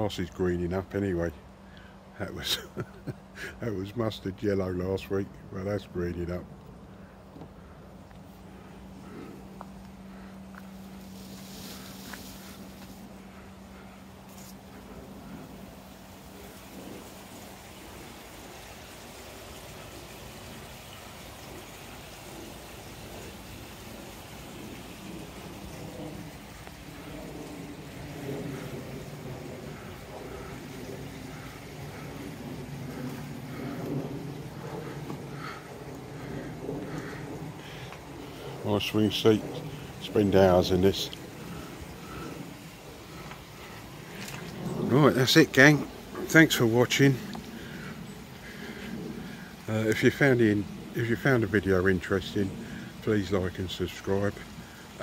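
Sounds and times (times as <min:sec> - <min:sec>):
droning hum with several tones: 0:00.0 - 0:55.0
low steady hum: 0:00.0 - 0:55.0
water rushing and splashing: 0:10.7 - 0:55.0.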